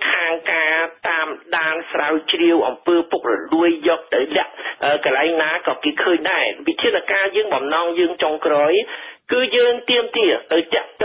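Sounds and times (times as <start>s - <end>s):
person reading news report: 0.0s - 11.0s.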